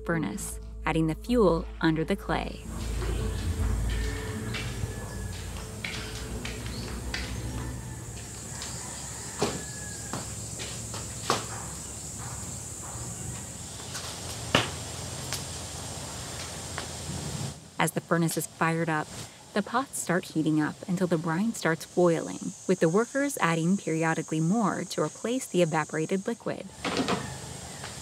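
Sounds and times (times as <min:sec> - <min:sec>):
sharp snaps of fire: 0:14.0 - 0:17.6.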